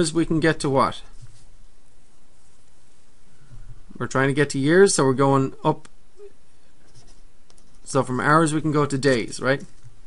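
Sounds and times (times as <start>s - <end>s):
marker pen scratching on paper: 6.8s - 7.9s.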